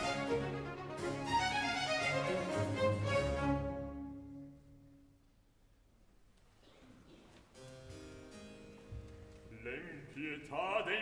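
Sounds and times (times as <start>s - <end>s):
soft harpsichord chords: 7.5s - 10.7s.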